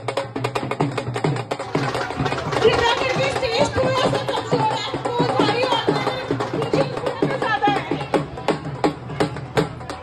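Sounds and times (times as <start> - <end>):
deep pitch-bending drum beats: 0.0 - 10.0
fast steady drumming: 0.0 - 10.0.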